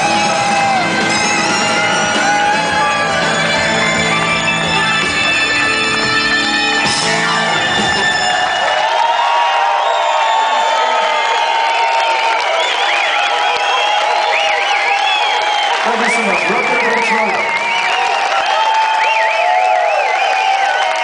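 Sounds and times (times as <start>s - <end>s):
crowd cheering and whooping: 0.0s - 21.0s.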